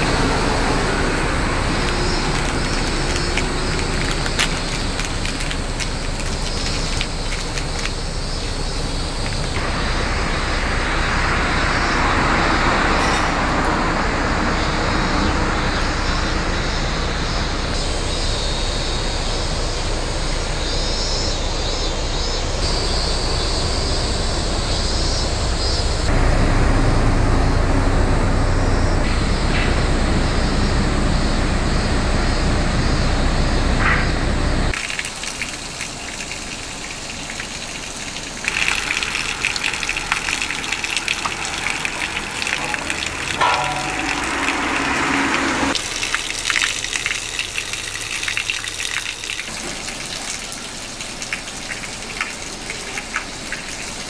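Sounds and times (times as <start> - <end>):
water splashing onto ground: 0.0 - 18.4, 34.7 - 54.0
steady hiss: 0.0 - 26.1, 34.7 - 54.0
low road traffic rumble: 0.0 - 54.0.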